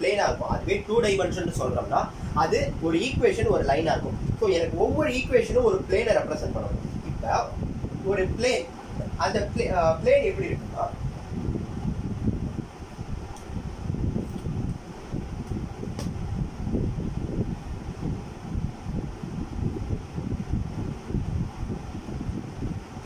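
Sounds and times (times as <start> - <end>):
air buffeting microphone: 0.0 - 23.0.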